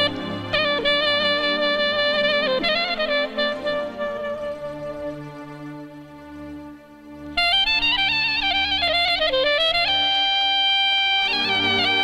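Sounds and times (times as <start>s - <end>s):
ornamented lead melody: 0.0s - 12.0s.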